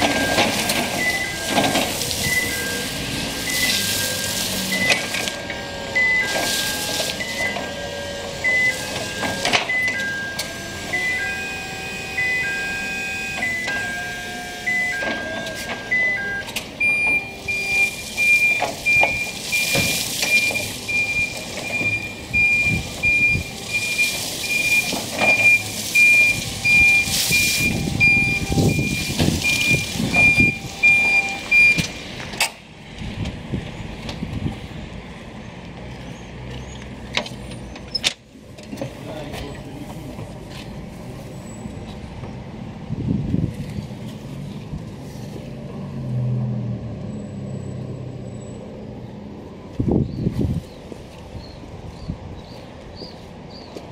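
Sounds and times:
forklift warning beeper: 0.0 - 32.0
forklift running: 0.0 - 43.5.

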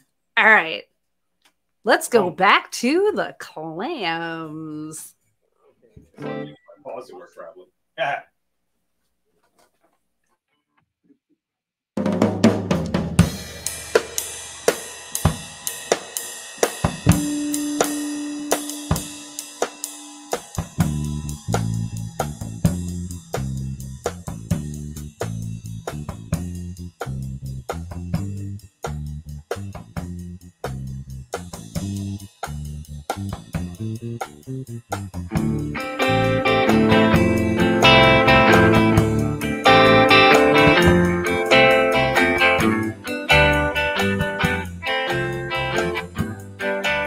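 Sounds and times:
drum kit beat: 1.9 - 3.2, 6.2 - 6.5, 12.0 - 47.0
electric guitar: 6.0 - 6.7, 16.7 - 22.8, 35.2 - 47.0
electric bass line: 6.2 - 6.6, 17.0 - 47.0.

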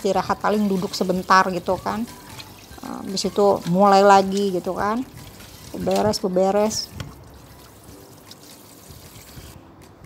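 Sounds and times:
tap water splashing into basin: 3.4 - 9.3.

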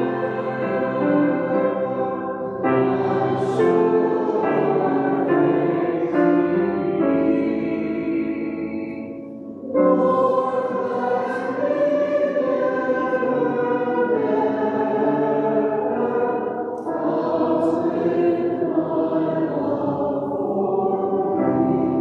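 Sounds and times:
grand piano: 0.0 - 22.0
group singing a hymn: 0.0 - 22.0.

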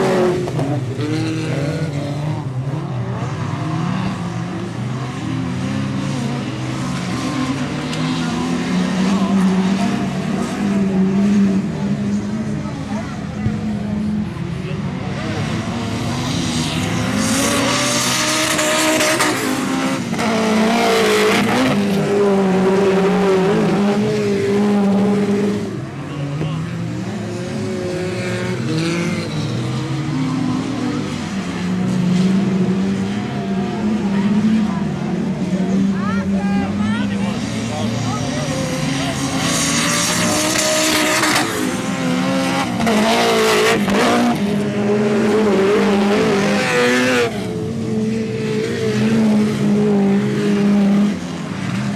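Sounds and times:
race car engines revving: 0.0 - 51.9.

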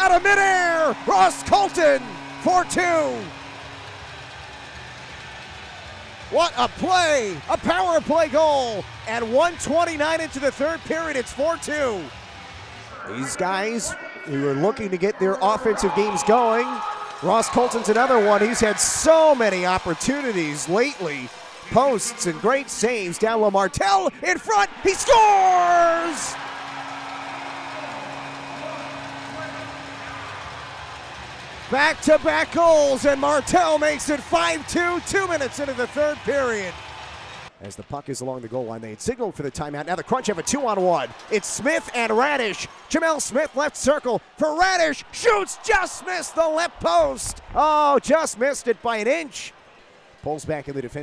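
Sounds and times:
arena crowd roaring: 0.0 - 37.5, 39.7 - 50.1.

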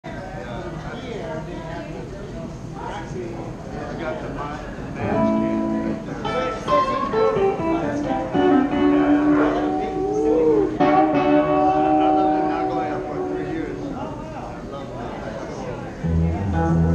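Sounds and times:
electric guitar playing: 5.0 - 13.9, 16.0 - 16.9.

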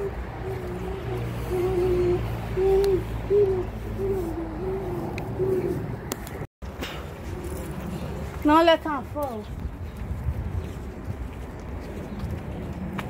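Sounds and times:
child blowing owl-like hoots: 0.0 - 5.9.

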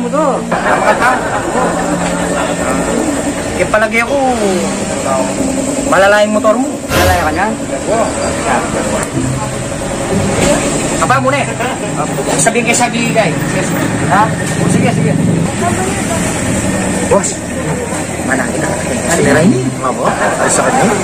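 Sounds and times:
men talking: 0.0 - 15.6, 16.8 - 21.0
engines humming: 0.0 - 21.0.

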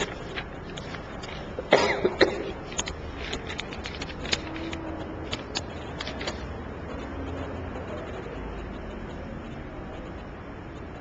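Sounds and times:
faint room noise: 0.0 - 11.0
person coughing: 1.6 - 2.6.

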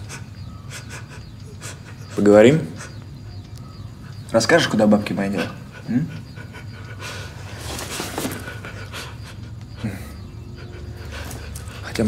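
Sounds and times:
man panting heavily: 0.0 - 3.2, 5.2 - 12.0
low steady hum: 0.0 - 12.0.

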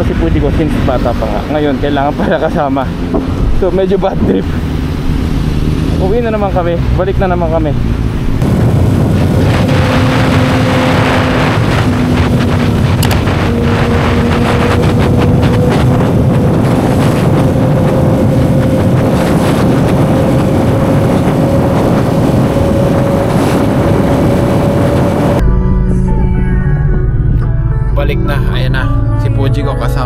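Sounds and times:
wind rushing over microphone: 0.0 - 25.4
motorcycle engine: 2.8 - 26.1.

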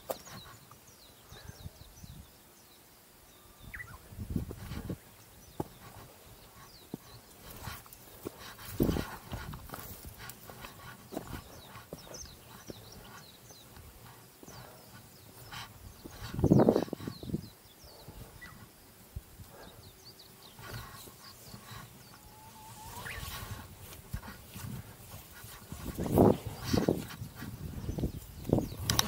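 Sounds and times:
small birds chirping: 0.0 - 29.0.

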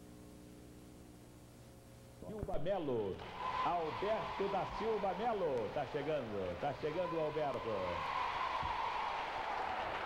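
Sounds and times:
audience applause: 3.4 - 10.0.

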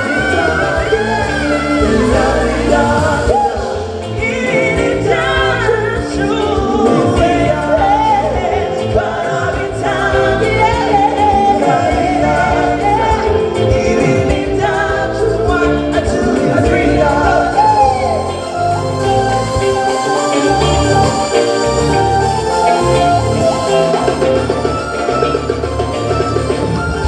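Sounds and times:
women singing: 0.0 - 25.2
keyboard: 0.0 - 27.0
live band playing: 0.0 - 27.0
steady bass line: 0.0 - 27.0.

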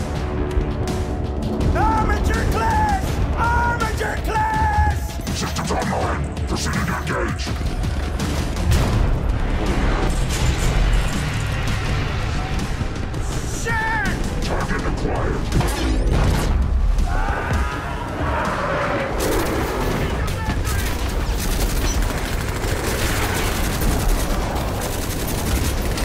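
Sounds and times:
dramatic film music: 0.0 - 26.0
distorted machine-like voice: 5.3 - 7.7, 14.4 - 15.7
booms and metallic crashes: 8.4 - 11.9.

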